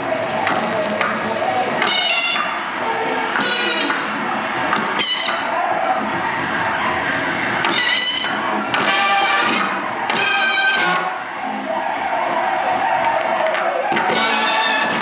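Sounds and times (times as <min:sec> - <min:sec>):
distorted electronic noise music: 0:00.0 - 0:15.0
high squealing tones: 0:00.0 - 0:15.0.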